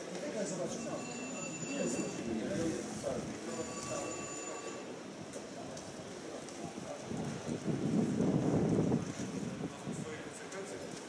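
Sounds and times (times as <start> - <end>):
wind on microphone: 6.6 - 10.3.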